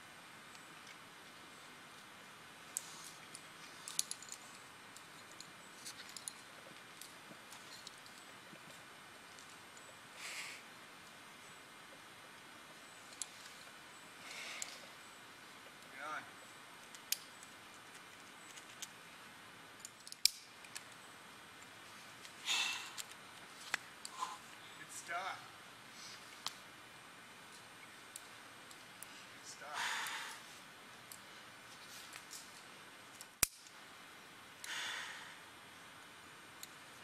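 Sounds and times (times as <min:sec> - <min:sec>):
faint steady hiss: 0:00.0 - 0:37.0
climbing gear clinking: 0:02.7 - 0:09.9
person hissing breath: 0:10.2 - 0:10.6, 0:29.6 - 0:30.6, 0:34.6 - 0:35.5.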